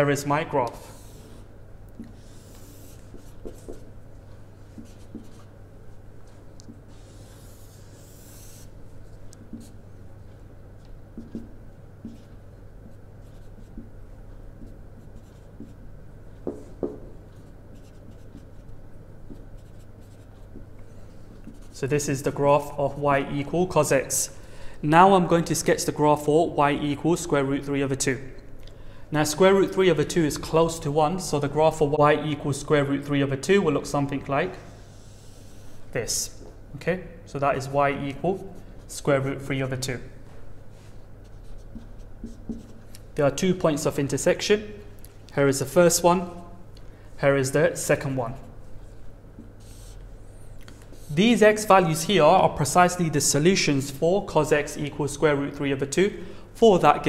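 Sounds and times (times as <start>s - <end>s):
steady low hum: 0.0s - 57.0s
marker scratching on whiteboard: 0.6s - 1.4s, 2.0s - 3.9s, 4.7s - 5.5s, 6.2s - 20.7s, 21.4s - 22.1s, 40.8s - 43.0s, 48.4s - 51.4s.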